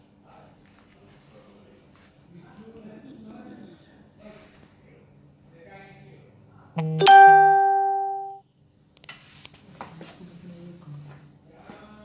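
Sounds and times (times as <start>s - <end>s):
loud two-note chime: 6.8s - 8.4s.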